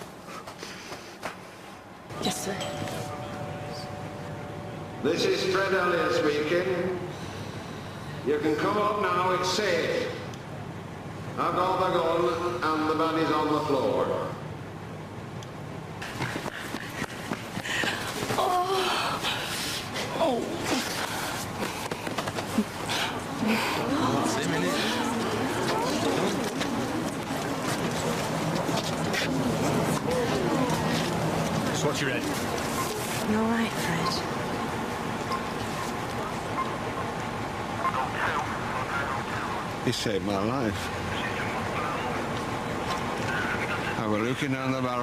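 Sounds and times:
outdoor rumble and hiss: 0.0s - 45.0s
vehicle engines running: 15.7s - 45.0s
hurried footsteps: 16.0s - 18.5s, 20.8s - 23.4s, 24.7s - 33.2s.

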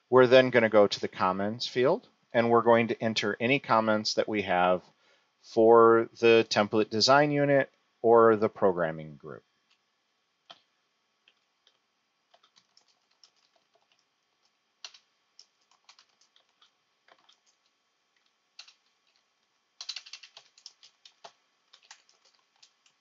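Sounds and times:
typing on computer keyboard: 11.3s - 23.0s.

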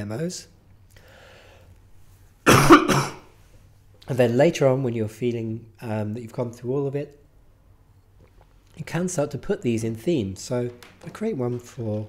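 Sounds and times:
man coughing: 2.5s - 3.3s.

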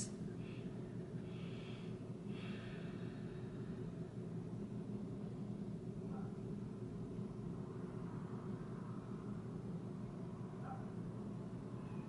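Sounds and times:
low room hum: 0.0s - 12.0s
soft breathing: 0.4s - 4.1s.

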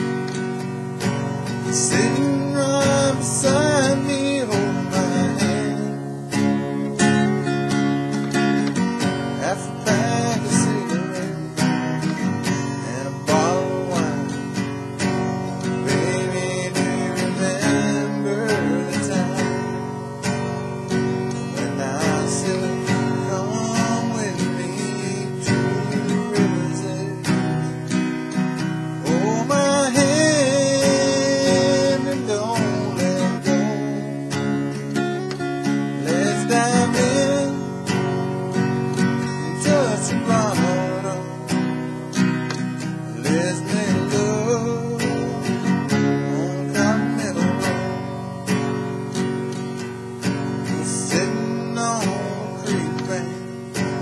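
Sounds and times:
acoustic guitar strumming: 0.0s - 54.0s
man singing: 1.0s - 54.0s.

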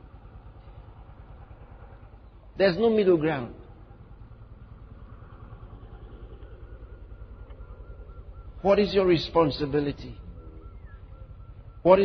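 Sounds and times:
low pulsing mechanical hum: 0.0s - 12.0s.

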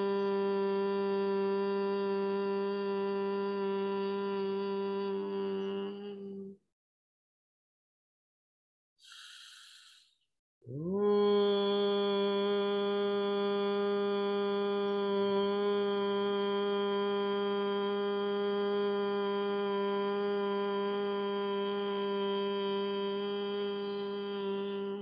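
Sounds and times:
person humming steadily: 0.0s - 6.6s, 10.7s - 25.0s.

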